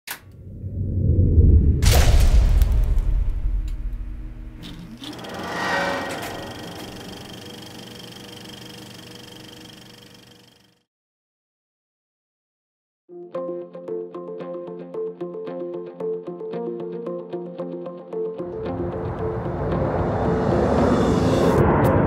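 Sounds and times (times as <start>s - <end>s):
deep rumble: 0.2s - 7.3s
rising whoosh: 0.3s - 7.6s, 18.5s - 22.0s
sharp hits: 1.8s - 7.6s.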